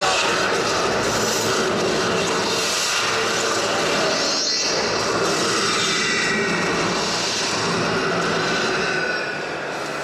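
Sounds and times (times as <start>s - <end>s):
engine-like roar: 0.0s - 9.9s.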